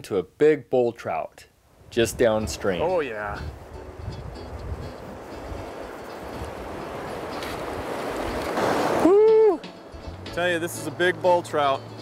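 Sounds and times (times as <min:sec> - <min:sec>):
wind on microphone: 0:01.9 - 0:09.4
man calling out: 0:02.0 - 0:03.5
fast-flowing river rushing: 0:02.8 - 0:12.0.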